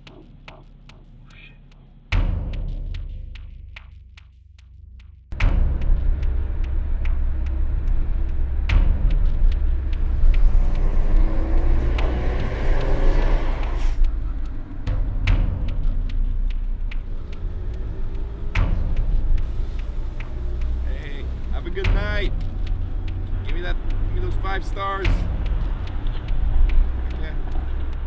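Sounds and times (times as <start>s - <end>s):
car engine and road rumble: 5.3s - 28.0s.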